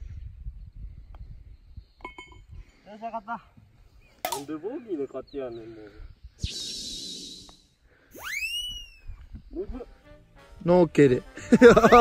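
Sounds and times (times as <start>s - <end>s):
hiss with wavering high tone: 6.4s - 8.4s
whistle sliding up: 6.4s - 9.3s.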